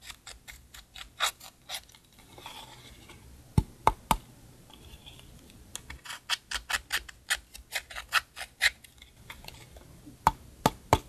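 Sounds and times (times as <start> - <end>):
metal tool scraping eyeshadow: 6.0 - 8.8.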